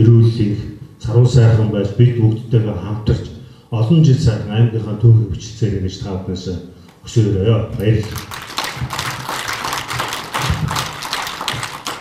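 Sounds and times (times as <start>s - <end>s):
audience clapping: 7.8s - 12.0s.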